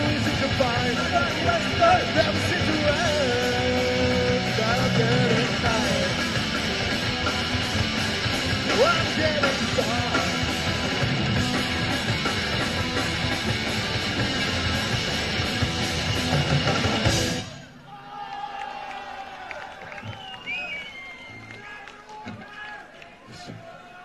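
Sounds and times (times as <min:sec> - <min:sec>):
punk rock band playing live: 0:00.0 - 0:17.5.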